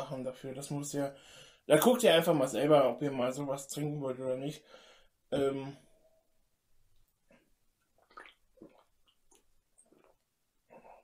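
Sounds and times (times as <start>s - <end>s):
person gulping and swallowing: 6.9s - 11.0s.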